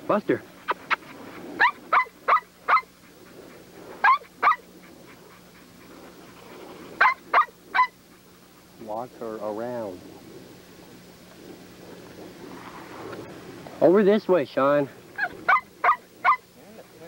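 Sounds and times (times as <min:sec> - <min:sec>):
dog barking: 0:01.6 - 0:02.9, 0:04.0 - 0:04.6, 0:07.0 - 0:08.0, 0:15.2 - 0:16.5.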